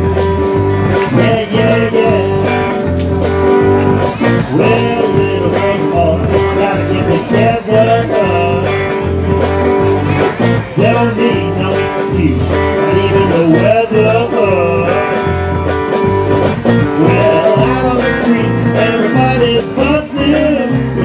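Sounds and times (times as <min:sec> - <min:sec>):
bass guitar: 0:00.0 - 0:21.0
drums: 0:00.0 - 0:21.0
electric guitar lead line: 0:00.0 - 0:21.0.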